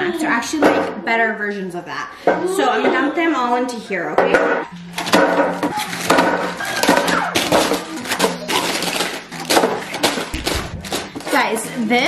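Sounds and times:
plastic wrappers crinkling: 0:05.0 - 0:12.0.

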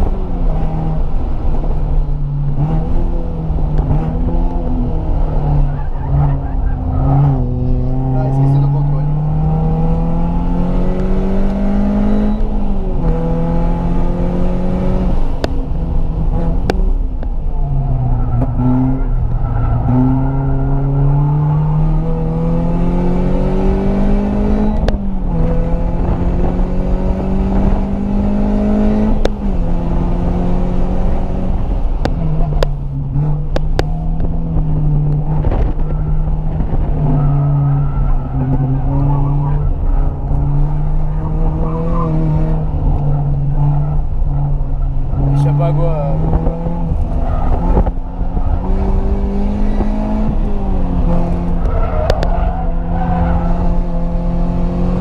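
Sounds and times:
car engine under full throttle: 0:00.0 - 0:55.0.

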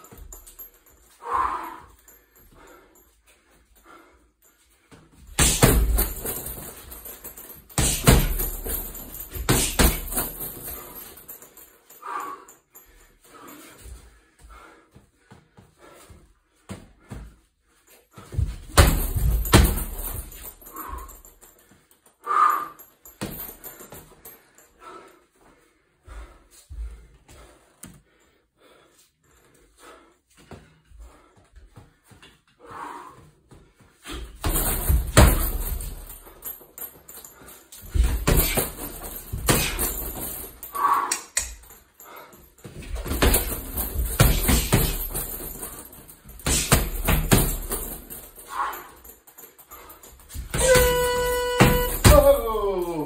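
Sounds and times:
punches thudding on heavy bag: 0:05.3 - 0:10.8, 0:18.3 - 0:21.1, 0:34.2 - 0:36.3, 0:37.8 - 0:40.6, 0:42.7 - 0:48.3, 0:50.3 - 0:52.9.

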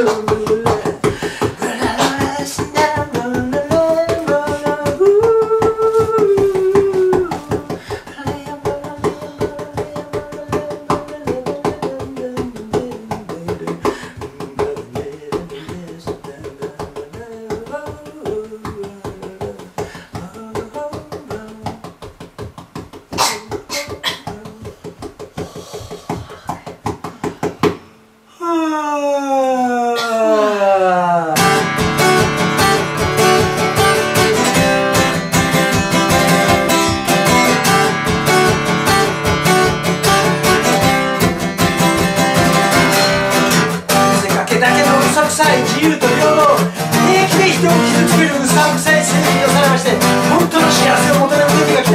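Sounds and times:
man singing: 0:00.0 - 0:22.2, 0:23.2 - 0:24.9, 0:43.9 - 0:51.9
acoustic guitar playing: 0:00.0 - 0:25.3, 0:31.4 - 0:51.9.

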